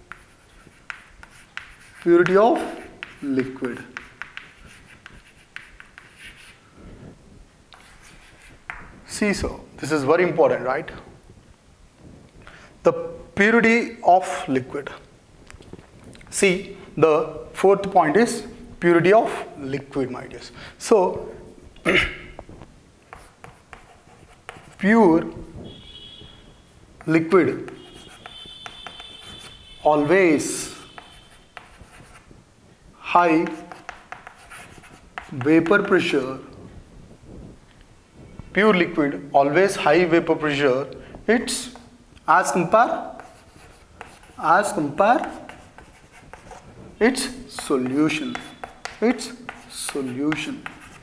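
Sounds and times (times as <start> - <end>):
chalk scratching on chalkboard: 0.0 - 6.6, 7.7 - 9.0, 23.1 - 25.8, 27.0 - 32.3, 33.0 - 36.2, 42.7 - 51.0
chalk tapping board: 0.0 - 6.6, 7.7 - 9.0, 23.1 - 25.4, 27.0 - 32.3, 33.1 - 36.0, 43.0 - 51.0.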